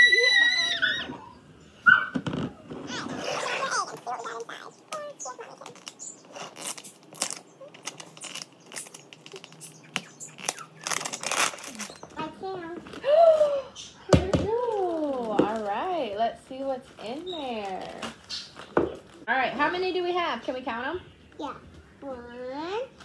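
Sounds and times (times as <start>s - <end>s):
plastic wrapping crinkling: 3.7s - 12.2s, 14.5s - 19.3s.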